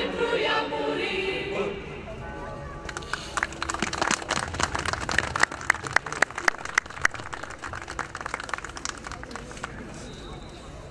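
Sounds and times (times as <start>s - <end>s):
crowd applauding: 2.9s - 10.0s.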